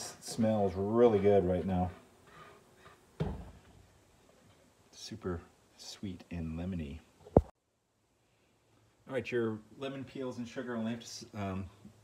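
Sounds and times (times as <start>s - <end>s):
spatula scraping a bowl: 0.2s - 3.0s.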